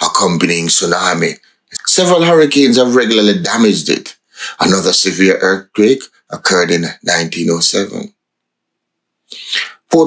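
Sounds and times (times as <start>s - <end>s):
man's voice: 0.0s - 8.1s, 9.4s - 10.0s
man's sharp intake of breath: 4.2s - 4.6s, 9.3s - 9.9s.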